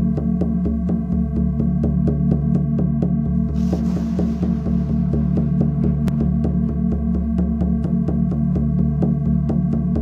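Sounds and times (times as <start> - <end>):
pulsing electronic drone: 0.0 - 9.5.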